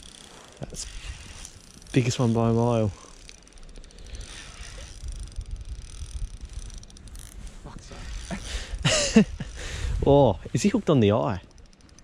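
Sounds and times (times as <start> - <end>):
fishing reel ticking: 0.0 - 12.0
wind rumble on microphone: 0.6 - 3.0, 4.0 - 10.8.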